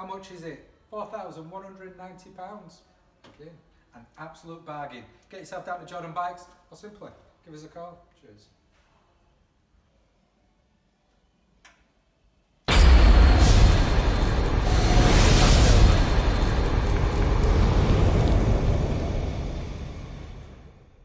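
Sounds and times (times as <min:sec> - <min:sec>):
explosion-like blast: 0:12.7 - 0:21.0
fiery rushing sound: 0:12.7 - 0:21.0.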